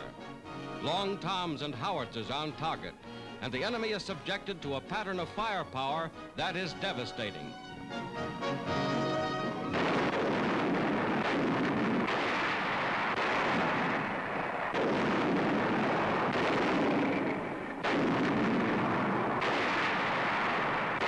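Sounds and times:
artillery blasts with rumble: 9.6s - 21.0s.

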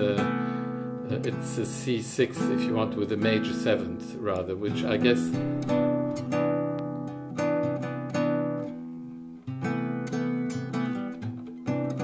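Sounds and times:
classical guitar chords: 0.0s - 12.0s.

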